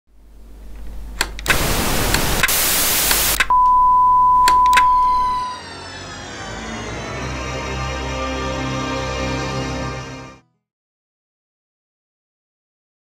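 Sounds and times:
static hiss: 0.2 - 3.5
clicks: 0.7 - 5.4
steady high beep: 3.5 - 5.7
theme music: 5.1 - 10.4.

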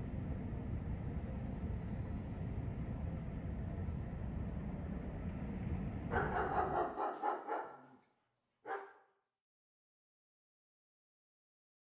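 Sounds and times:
short bark-like call: 6.1 - 8.0, 8.7 - 9.0.

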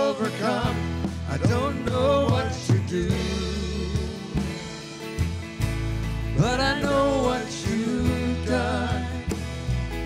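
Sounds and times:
man singing: 0.0 - 4.8, 6.4 - 9.5
acoustic guitar: 0.0 - 10.0.

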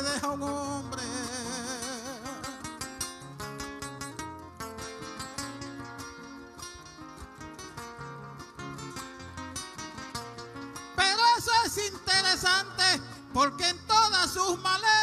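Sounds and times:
person singing: 0.0 - 2.7, 11.0 - 15.0
acoustic guitars plucking: 0.0 - 15.0.

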